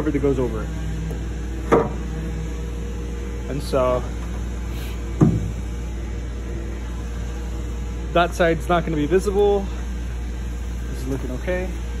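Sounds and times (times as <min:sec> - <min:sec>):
low hum of machinery: 0:00.0 - 0:12.0.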